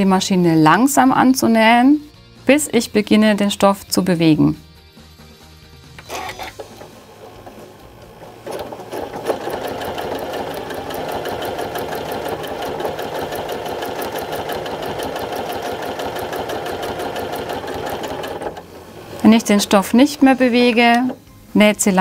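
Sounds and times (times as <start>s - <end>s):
sewing machine stitching: 6.0s - 19.6s.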